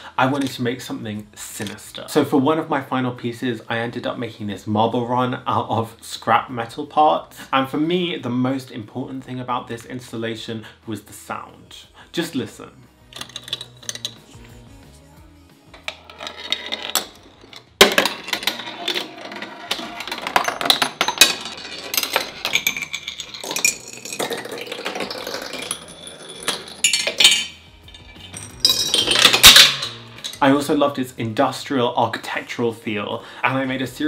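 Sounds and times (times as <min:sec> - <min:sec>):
marbles clattering on metal: 0:00.2 - 0:00.8, 0:13.2 - 0:14.4, 0:15.8 - 0:30.7.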